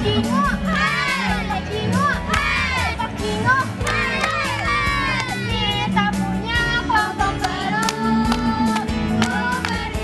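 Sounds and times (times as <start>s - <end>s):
music: 0.0s - 10.0s
girls chanting a cheer: 0.7s - 3.0s, 3.8s - 5.6s.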